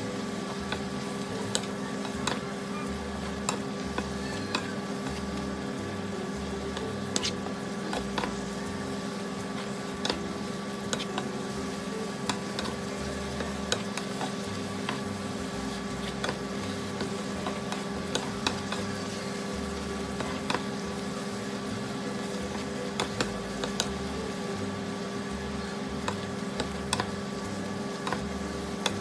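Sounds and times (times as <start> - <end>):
spinach sizzling in a frying pan: 0.0 - 29.0.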